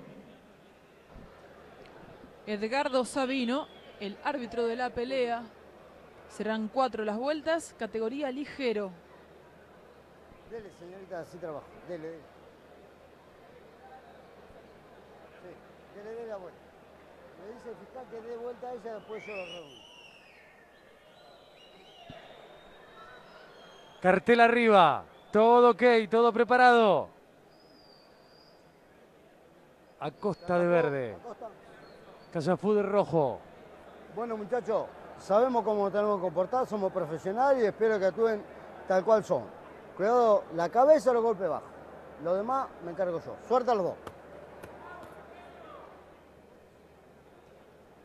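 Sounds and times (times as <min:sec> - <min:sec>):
faint crowd murmur: 0:00.0 - 0:26.1, 0:26.9 - 0:48.0.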